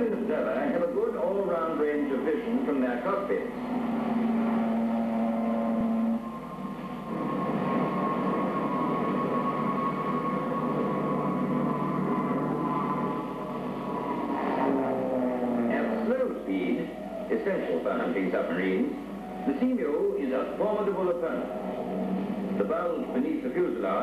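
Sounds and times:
low steady hum: 0.0 - 24.0
turboprop engine drone with whine: 0.0 - 24.0.

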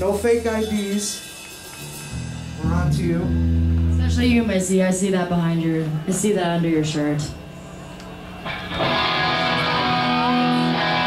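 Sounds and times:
electric guitar chord ringing: 0.0 - 4.8, 8.0 - 11.0.

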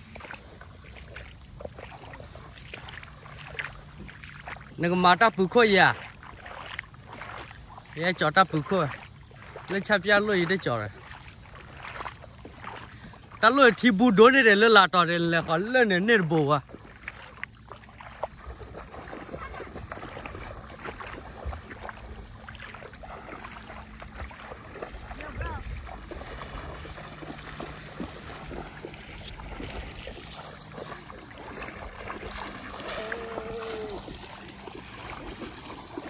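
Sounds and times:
water splashing as people wade: 0.0 - 36.0
wind rumble on microphone: 24.1 - 30.5.

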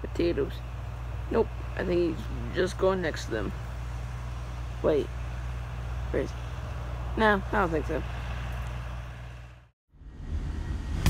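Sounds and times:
tractor engine droning: 0.0 - 11.0.

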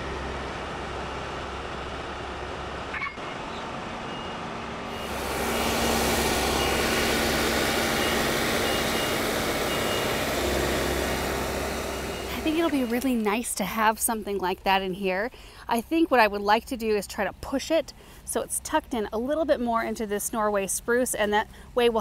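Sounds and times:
tractor engine running: 0.0 - 14.0.

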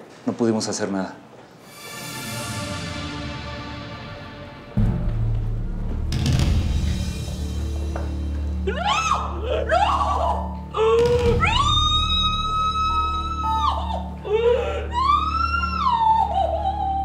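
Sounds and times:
woman wailing in grief: 8.6 - 17.0.

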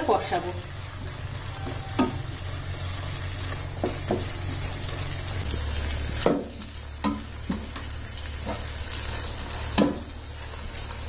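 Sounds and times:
onion paste sizzling in oil: 0.0 - 11.0.

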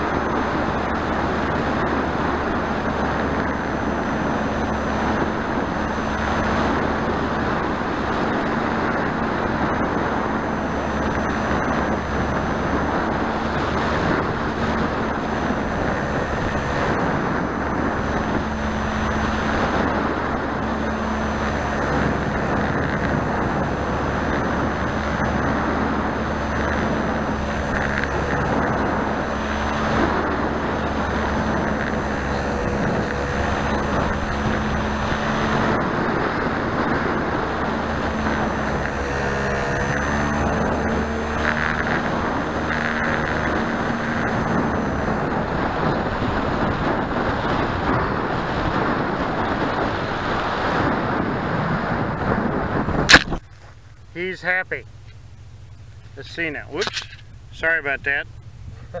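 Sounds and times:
model airplane motor hum: 0.0 - 53.4
wind rushing over microphone: 0.0 - 59.0.

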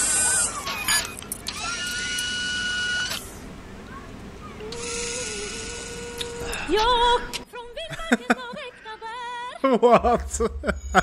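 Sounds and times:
small electric motor whining: 0.0 - 3.5, 4.4 - 7.4.

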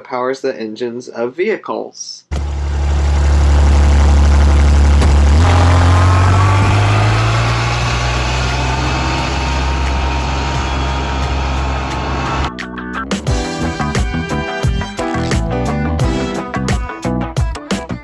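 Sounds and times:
vehicle engine droning: 2.3 - 12.5.

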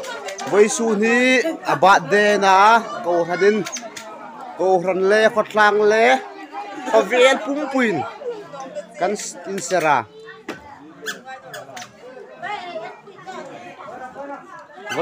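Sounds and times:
people chattering: 0.0 - 15.0.

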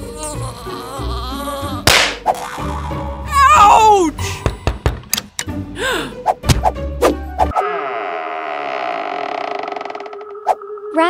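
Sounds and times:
wooden door creaking: 7.7 - 10.4.

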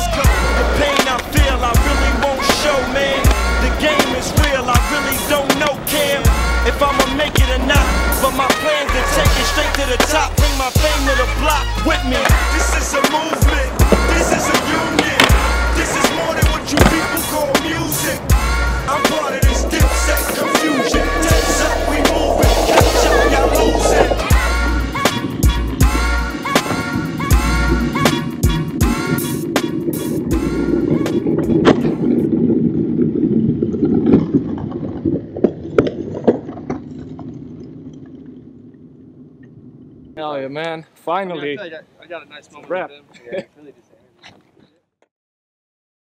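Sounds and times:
hip-hop beat with deep bass: 0.0 - 31.9
skateboard tail clacks: 0.0 - 32.0
skateboard wheels rolling on pavement: 0.0 - 35.6.

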